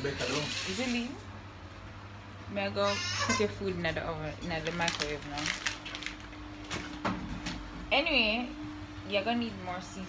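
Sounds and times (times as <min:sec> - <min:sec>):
kitchen appliance humming: 0:00.0 - 0:10.0.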